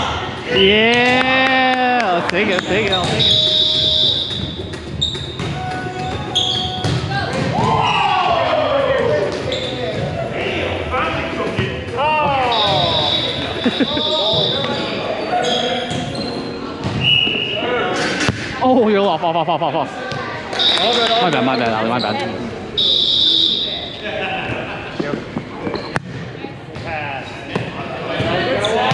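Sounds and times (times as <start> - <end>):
sneakers squeaking: 2.4 - 8.1, 9.0 - 10.3, 11.5 - 18.4, 20.1 - 28.9.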